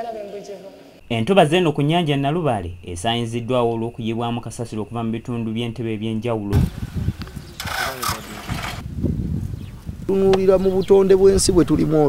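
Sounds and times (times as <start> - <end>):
truck engine rumbling: 6.6 - 9.0.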